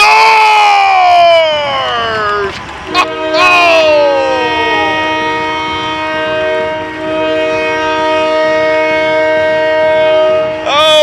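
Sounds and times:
arena goal horn chord: 0:02.9 - 0:11.0.

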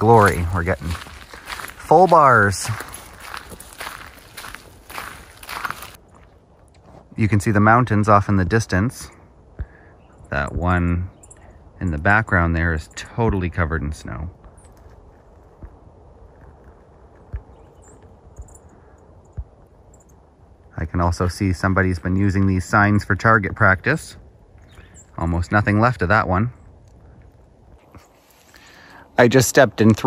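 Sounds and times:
footsteps on gravel: 0:00.0 - 0:07.2, 0:27.7 - 0:28.8.

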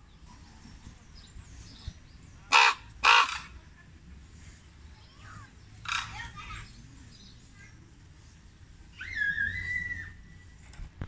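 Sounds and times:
raven calling: 0:02.5 - 0:03.6, 0:05.8 - 0:06.4.

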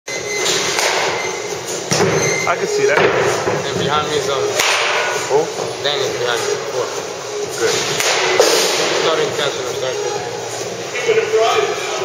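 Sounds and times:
large indoor hall noise: 0:00.1 - 0:12.0.

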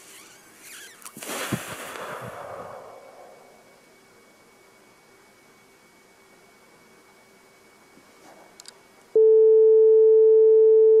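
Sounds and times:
electronic sine tone: 0:09.2 - 0:11.0.

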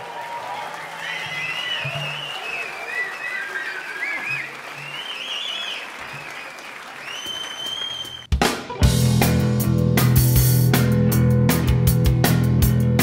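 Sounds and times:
audience applauding: 0:00.0 - 0:08.3.

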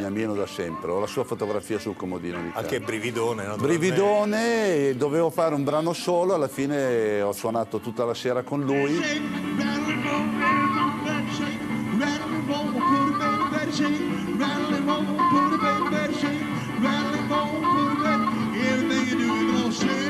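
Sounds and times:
live blues band: 0:09.0 - 0:20.0.

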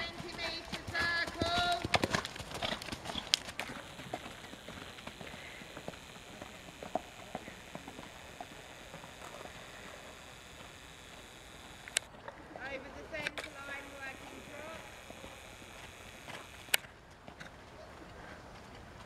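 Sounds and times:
person's voice: 0:00.0 - 0:01.8, 0:12.6 - 0:15.4
horse hoofbeats trotting: 0:00.0 - 0:19.0.

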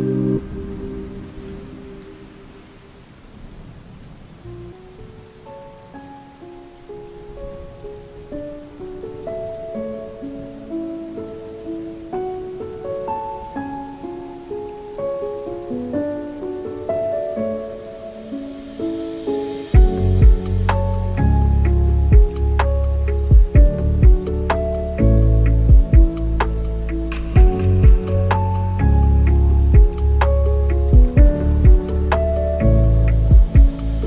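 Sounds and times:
lofi music melody: 0:00.0 - 0:34.0
steady rain hiss: 0:00.0 - 0:34.0.

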